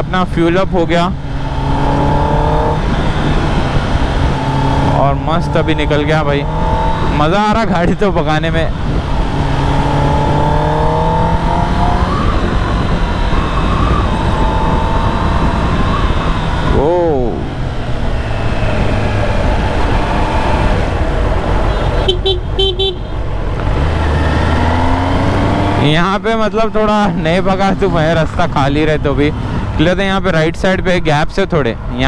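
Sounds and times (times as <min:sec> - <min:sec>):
riding wind rush: 0:00.0 - 0:32.0
vehicle horn beeps: 0:21.6 - 0:23.1.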